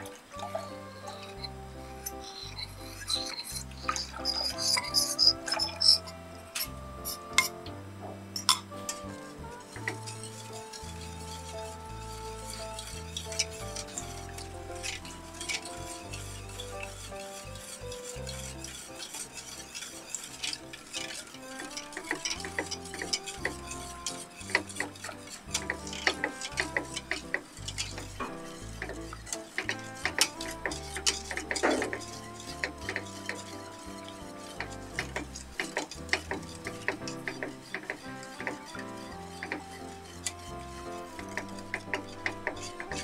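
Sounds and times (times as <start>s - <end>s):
whisk scraping metal pot: 0.0s - 43.0s.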